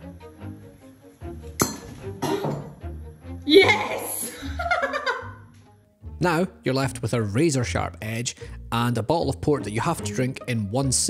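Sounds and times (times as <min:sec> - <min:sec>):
background music: 0:00.0 - 0:11.0
glass bottle neck snapping: 0:01.6 - 0:02.7.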